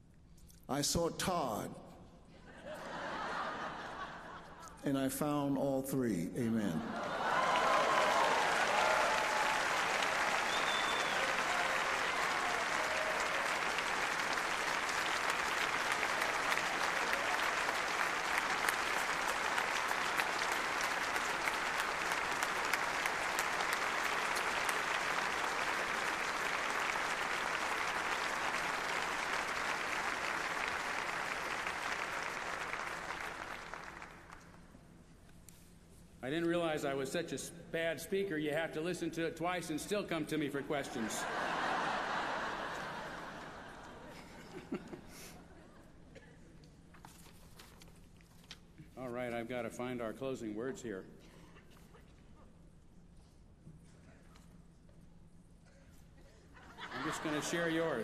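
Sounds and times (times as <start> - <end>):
large audience applauding: 6.9 - 34.6, 40.8 - 45.3, 56.7 - 58.0.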